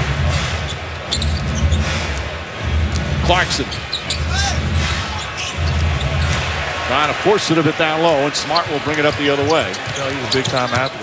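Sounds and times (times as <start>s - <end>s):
deep bass line music: 0.0s - 6.7s
crowd noise: 0.0s - 11.0s
sneaker squeaks on hardwood: 9.5s - 11.0s.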